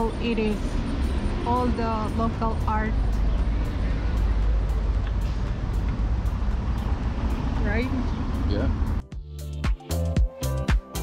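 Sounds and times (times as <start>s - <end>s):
low rumble of traffic: 0.0s - 9.1s
faint background music beat: 0.0s - 11.0s.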